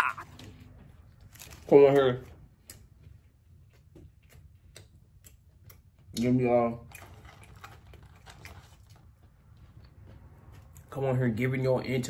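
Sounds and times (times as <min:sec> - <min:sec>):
mouth chewing food: 0:02.5 - 0:11.0.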